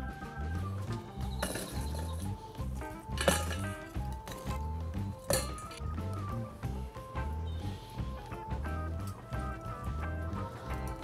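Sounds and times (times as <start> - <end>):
background music with bass beat: 0.0 - 11.0.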